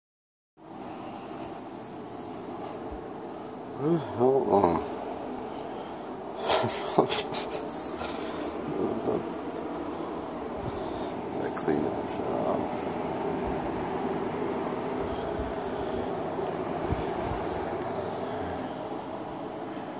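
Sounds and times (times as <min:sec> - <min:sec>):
background hum and hiss: 0:00.6 - 0:19.9
man laughing: 0:06.4 - 0:09.3.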